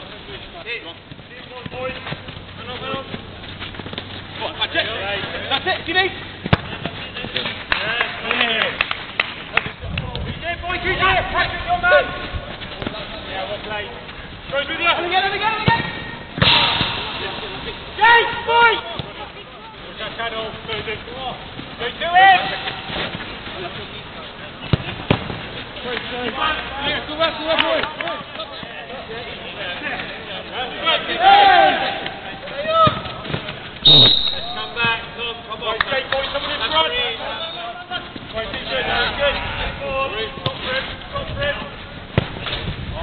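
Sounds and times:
ball being kicked thuds: 6.4 - 7.4, 24.7 - 25.4, 42.1 - 42.9
footballers shouting: 10.4 - 43.0.

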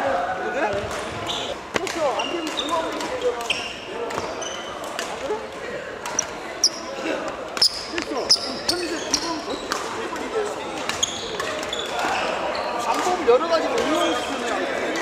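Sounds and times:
shoes squeaking on court: 0.7 - 5.0, 6.1 - 13.2.

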